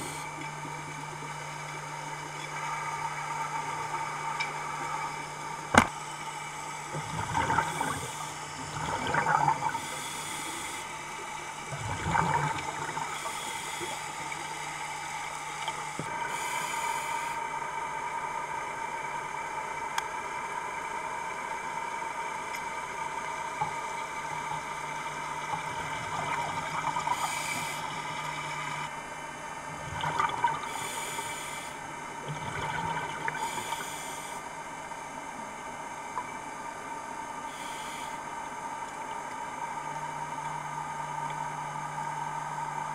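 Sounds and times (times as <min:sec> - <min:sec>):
steady underwater hum: 0:00.0 - 0:42.9
exhaled bubbles gushing: 0:06.9 - 0:10.0, 0:11.6 - 0:13.3, 0:24.4 - 0:28.8, 0:29.7 - 0:30.9, 0:32.2 - 0:33.7
diver breathing through regulator: 0:30.7 - 0:31.8, 0:33.4 - 0:34.4, 0:37.5 - 0:38.2.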